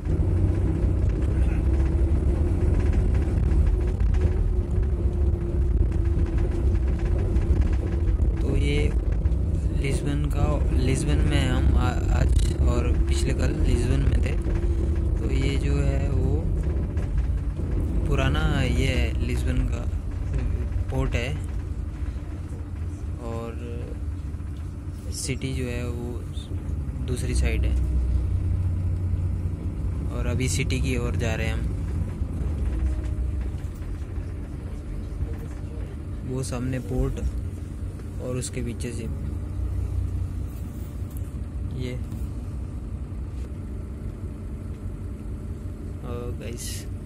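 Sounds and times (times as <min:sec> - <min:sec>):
bus rumbling inside cabin: 0:00.0 - 0:47.0.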